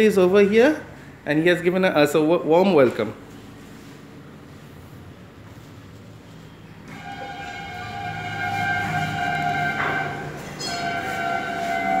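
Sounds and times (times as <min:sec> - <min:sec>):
train horn blasts: 0:06.9 - 0:12.0.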